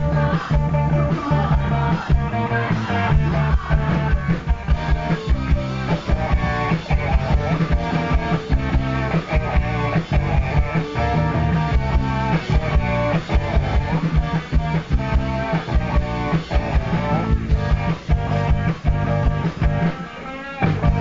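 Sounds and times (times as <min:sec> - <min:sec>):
bass guitar: 0:00.0 - 0:21.0
driving drum beat: 0:00.0 - 0:21.0
electric guitar: 0:00.0 - 0:21.0.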